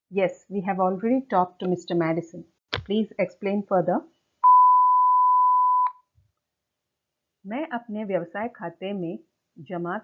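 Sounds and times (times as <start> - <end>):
electronic beep: 4.4 - 6.0.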